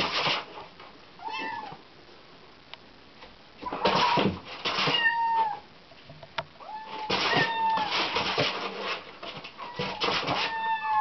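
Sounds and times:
rustling: 0:03.2 - 0:11.0
kitten meowing: 0:04.9 - 0:05.6, 0:06.6 - 0:08.0, 0:09.7 - 0:11.0.

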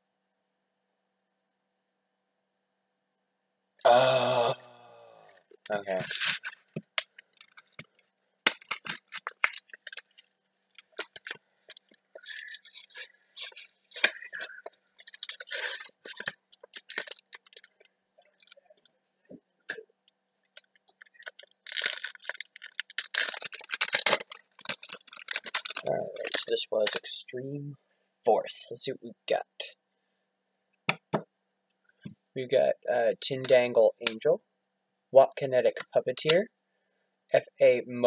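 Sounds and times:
foil wrapper crinkling: 0:06.0 - 0:18.9, 0:20.5 - 0:27.1
packaging clicks and rustles: 0:06.2 - 0:18.9, 0:20.5 - 0:27.0.

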